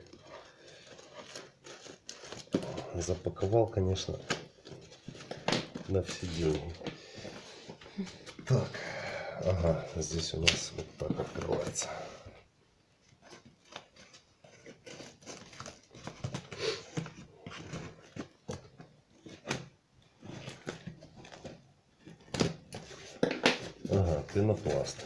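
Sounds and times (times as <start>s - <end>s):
cardboard tearing: 0.0s - 6.7s, 13.3s - 25.0s
tape crackling: 0.0s - 8.7s, 13.0s - 25.0s.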